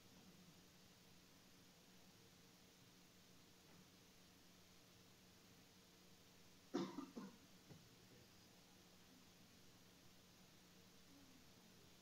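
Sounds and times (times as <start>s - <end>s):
person coughing: 6.8s - 7.4s.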